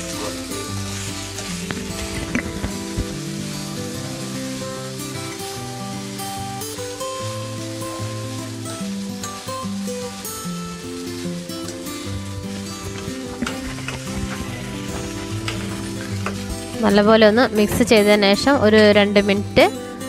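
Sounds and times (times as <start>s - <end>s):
food sizzling in a frying pan: 0.0s - 20.0s
instrumental background music: 0.0s - 20.0s.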